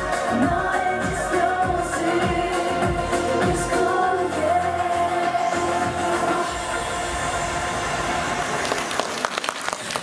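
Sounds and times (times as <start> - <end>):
pop song backing music: 0.0 - 8.9
audience applause: 8.4 - 10.0.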